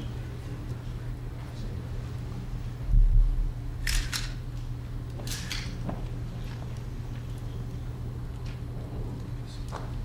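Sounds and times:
steady low hum: 0:00.0 - 0:10.0
camera shutter clicks: 0:03.8 - 0:04.4.

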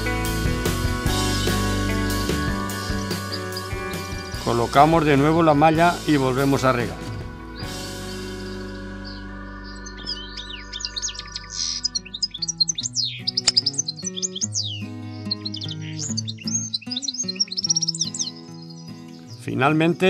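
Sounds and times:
background music of held notes: 0:00.0 - 0:20.0
small birds chirping: 0:00.0 - 0:20.0.

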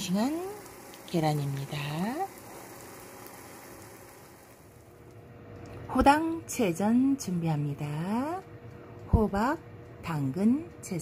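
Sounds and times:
woman speaking: 0:00.0 - 0:02.3, 0:05.9 - 0:08.5, 0:09.1 - 0:11.0
eggs sizzling in a pan: 0:00.0 - 0:05.2.

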